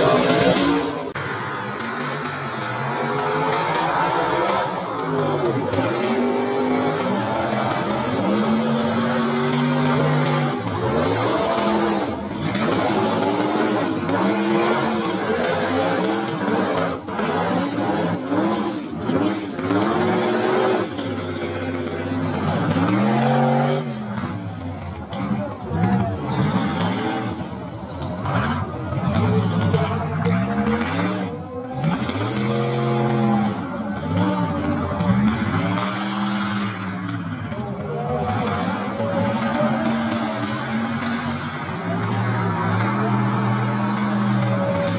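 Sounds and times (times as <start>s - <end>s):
truck engines revving: 0.0s - 44.9s.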